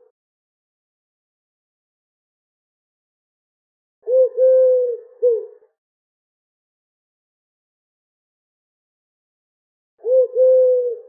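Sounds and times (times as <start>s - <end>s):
pigeon cooing: 4.1s - 5.6s, 10.0s - 11.0s.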